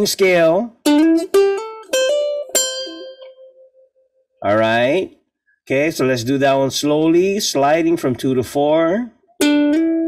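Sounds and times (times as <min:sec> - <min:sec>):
ukulele notes plucked: 0:00.2 - 0:03.9, 0:09.4 - 0:10.0.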